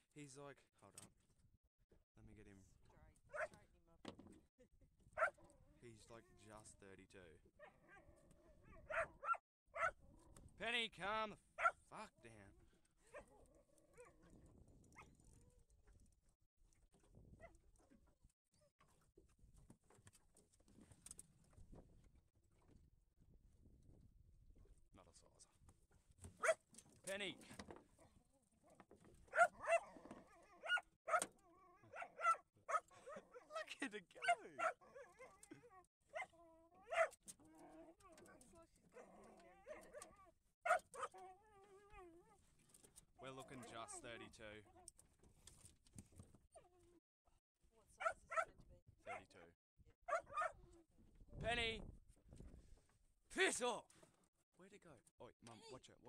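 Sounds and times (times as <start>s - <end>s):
small dog barking: 3.3s - 3.5s, 5.2s - 5.4s, 7.6s - 10.0s, 11.6s - 11.8s, 26.4s - 26.6s, 29.3s - 37.2s, 38.9s - 41.3s, 48.0s - 49.4s, 50.1s - 50.7s
dog whining: 29.3s - 42.4s.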